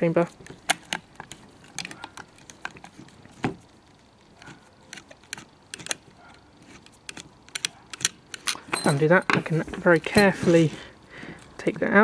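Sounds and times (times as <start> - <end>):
screwdriver clicking and scraping: 0.2 - 3.5, 4.4 - 10.6.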